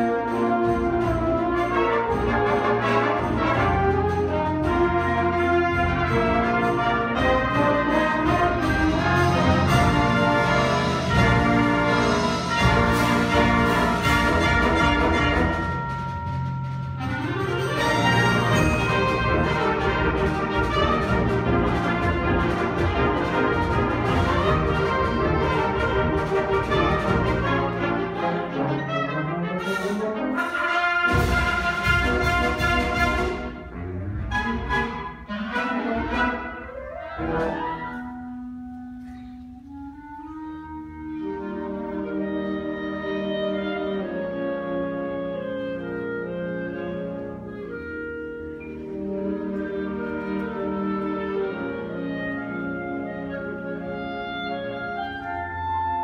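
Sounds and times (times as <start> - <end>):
concert band playing: 0.0 - 56.0.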